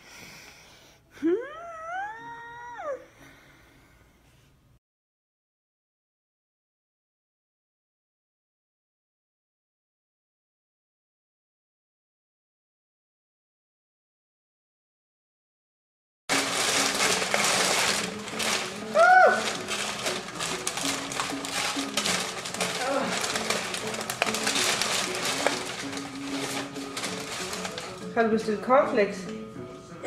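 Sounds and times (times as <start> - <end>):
high-pitched vocal cry: 1.2 - 3.1
paper bag rustling: 16.3 - 28.4.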